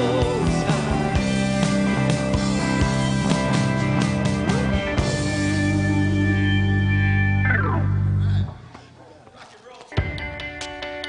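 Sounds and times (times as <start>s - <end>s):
live band sustained chord: 0.0s - 8.4s
electric guitar with effects: 0.0s - 8.7s.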